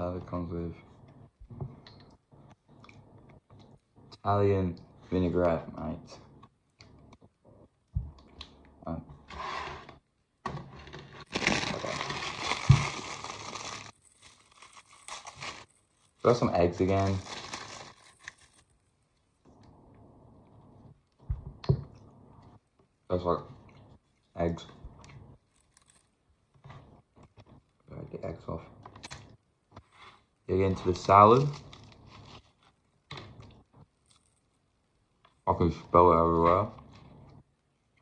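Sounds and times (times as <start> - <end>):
plastic wrapping crinkling and tearing: 11.1 - 18.9, 25.5 - 26.2, 31.0 - 32.8.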